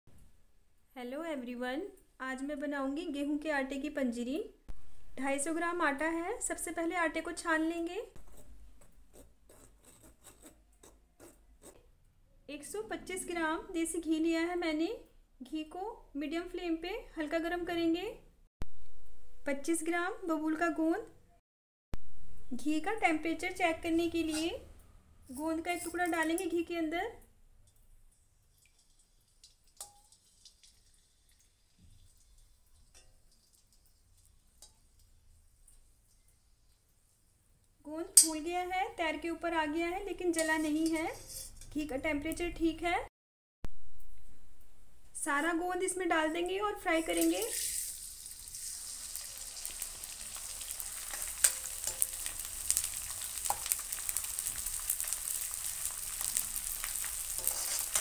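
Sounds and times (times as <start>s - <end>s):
metal spoon clinking on steel pan: 24.2s - 24.6s, 25.3s - 26.6s, 28.6s - 30.6s, 32.9s - 33.2s, 38.2s - 38.5s, 40.3s - 41.8s, 50.5s - 52.8s, 53.4s - 53.8s, 57.4s - 58.0s.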